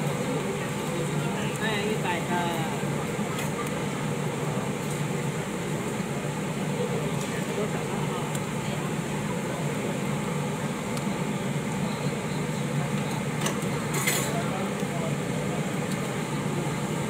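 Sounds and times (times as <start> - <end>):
background chatter: 0.0 - 17.0
low mechanical hum: 0.0 - 17.0.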